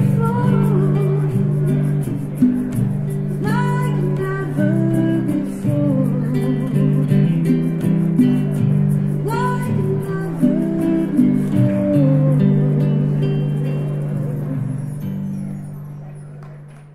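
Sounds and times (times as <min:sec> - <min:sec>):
acoustic guitar strumming: 0:00.0 - 0:16.9
hand percussion: 0:00.0 - 0:16.9.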